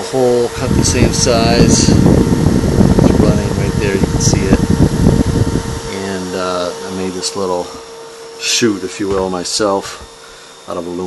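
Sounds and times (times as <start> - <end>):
computer fan humming: 0.0 - 11.0.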